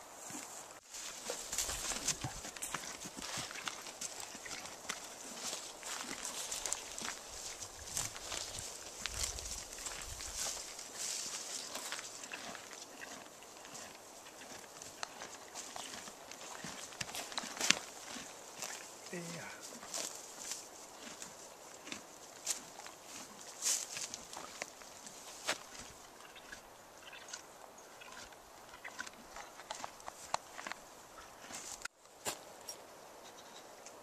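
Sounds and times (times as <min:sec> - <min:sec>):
horse chewing grass: 0:00.2 - 0:31.9.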